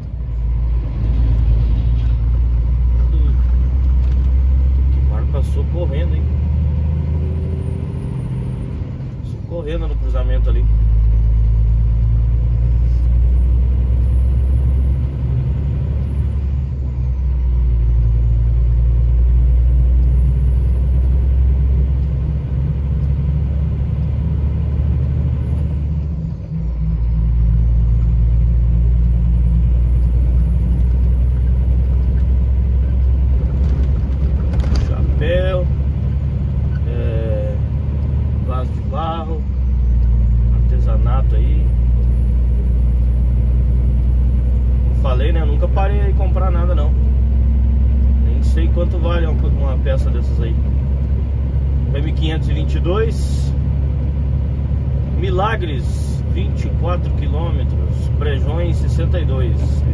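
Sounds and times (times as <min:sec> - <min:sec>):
road noise: 0:00.0 - 0:59.9
truck engine drone: 0:00.0 - 0:59.9.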